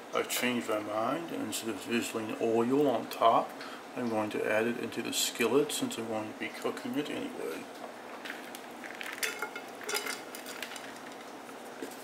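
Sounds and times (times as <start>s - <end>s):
food sizzling in oil: 8.0s - 12.0s.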